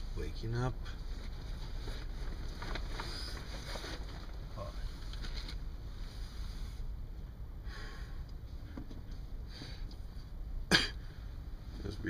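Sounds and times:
steady low rumble: 0:00.0 - 0:12.0
sleeping bag rustling: 0:01.5 - 0:05.5.

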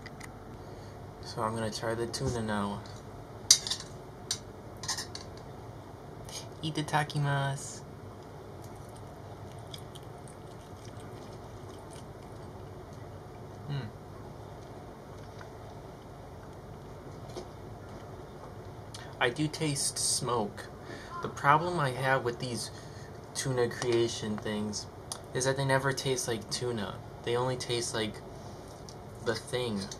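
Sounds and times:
soft chewing mouth clicks: 0:08.2 - 0:13.7.

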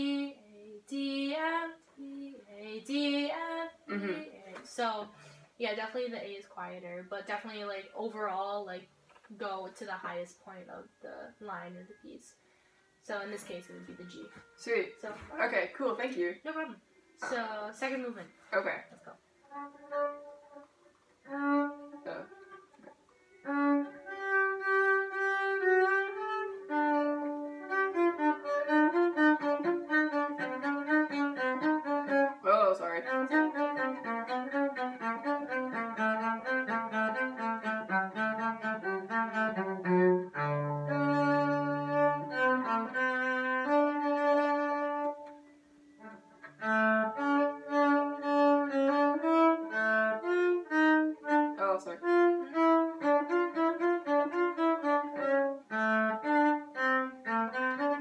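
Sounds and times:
solo cello playing: 0:00.0 - 0:58.0.

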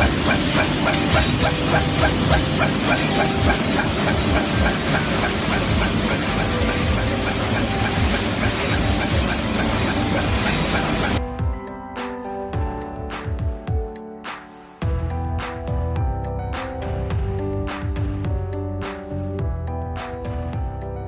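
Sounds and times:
machine running loudly: 0:00.0 - 0:11.2
background music: 0:00.0 - 0:21.0.

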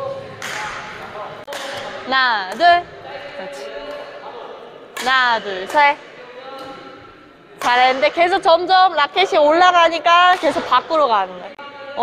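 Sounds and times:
racket hitting shuttlecock: 0:00.4 - 0:02.8, 0:04.9 - 0:06.0, 0:07.6 - 0:08.4.

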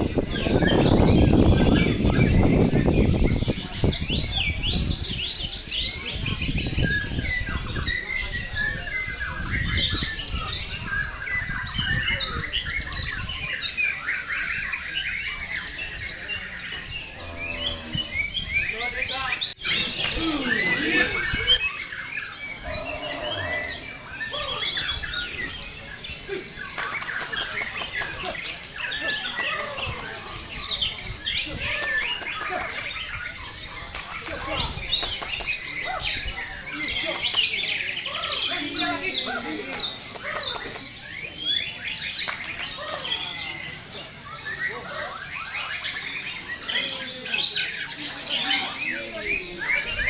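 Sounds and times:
birds whistling and chirping: 0:00.0 - 0:50.0.

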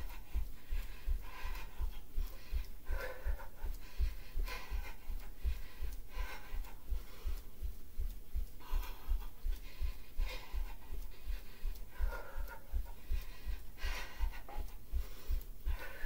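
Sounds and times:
woman breathing hard: 0:00.0 - 0:16.0.

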